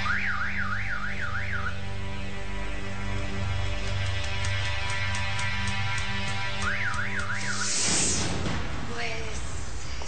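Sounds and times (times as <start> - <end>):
car alarm warbling: 0.0 - 2.0, 6.6 - 7.8.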